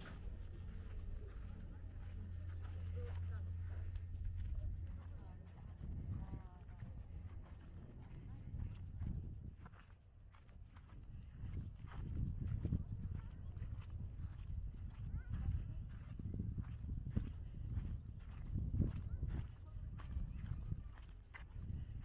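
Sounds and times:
footsteps walking outdoors: 0.0 - 22.0
wind on microphone: 3.5 - 22.0.

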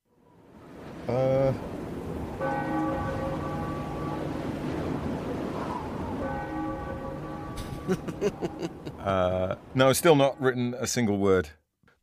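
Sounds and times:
bell tolling: 6.2 - 8.2.

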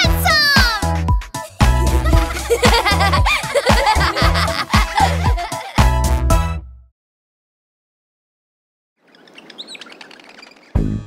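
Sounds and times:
bouncy music with plucked notes: 0.0 - 6.6
birds chirping: 9.0 - 10.9.

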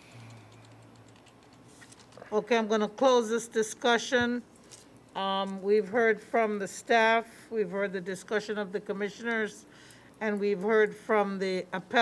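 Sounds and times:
computer keyboard typing: 0.2 - 2.1.

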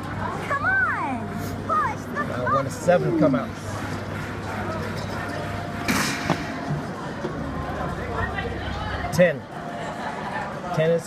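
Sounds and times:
casino background noise: 0.0 - 11.0.

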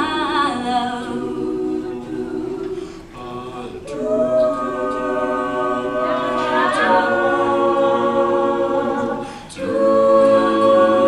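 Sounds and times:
a cappella group singing chords: 0.0 - 11.0.

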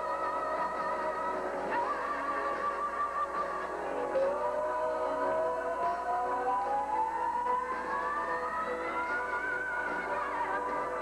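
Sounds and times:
sustained backing chords: 0.0 - 11.0.

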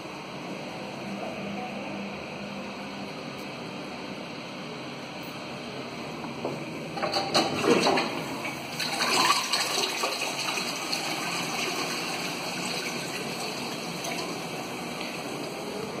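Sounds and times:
toilet flushing: 7.0 - 16.0.

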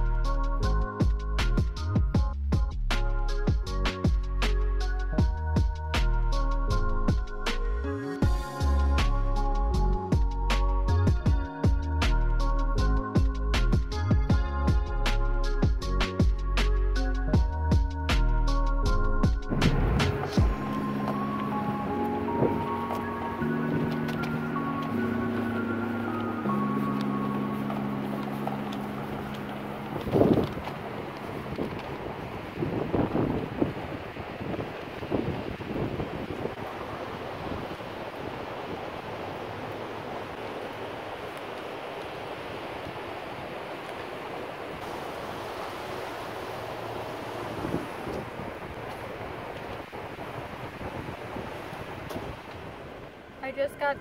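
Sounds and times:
background music chords: 0.0 - 31.2
wind noise on microphone: 0.0 - 54.0.

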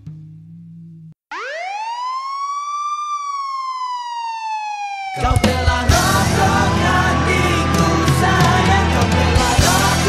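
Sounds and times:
siren wailing: 1.3 - 9.7
band music: 5.2 - 10.0.

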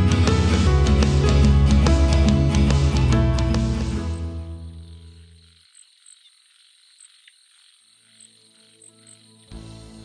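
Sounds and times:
music: 0.0 - 5.4, 8.0 - 10.0
frogs calling: 4.1 - 10.0.

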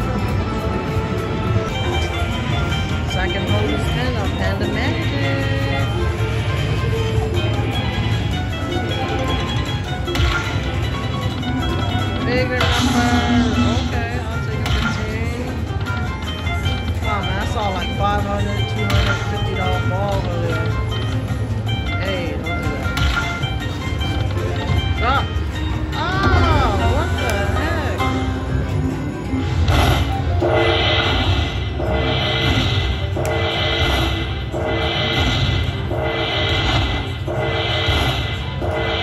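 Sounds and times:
low casino hum: 0.0 - 39.0
slot machine bonus music: 0.0 - 39.0.

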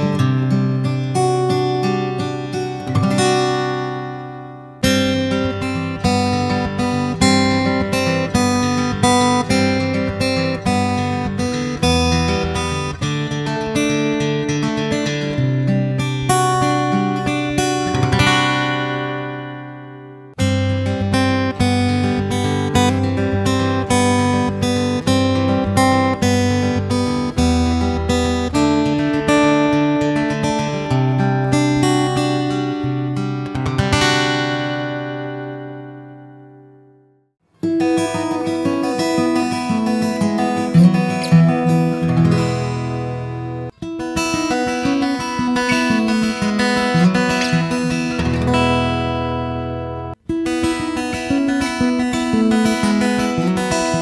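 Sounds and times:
acoustic guitar picking and strumming: 0.0 - 54.0.

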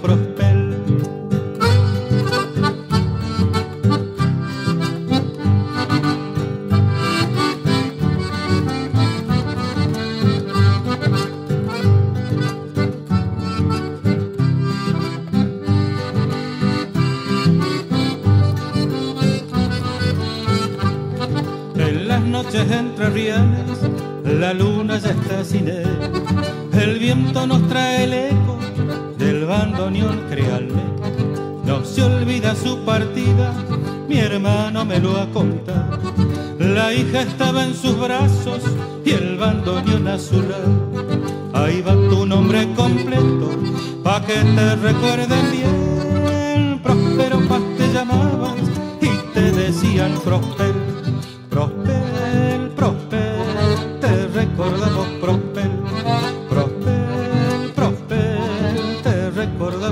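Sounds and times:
guitar accompaniment: 0.0 - 59.9
bandoneon melody: 1.3 - 59.9.

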